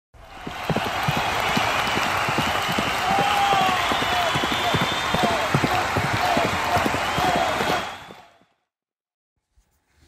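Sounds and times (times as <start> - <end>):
crowd noise: 0.2 - 8.4
drawn-out shouts: 0.3 - 8.3
hoofbeats of trotting horses: 0.4 - 8.4.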